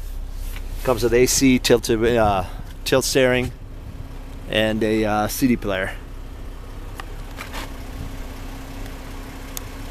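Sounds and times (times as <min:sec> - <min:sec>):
car engine idling: 0:00.0 - 0:09.9.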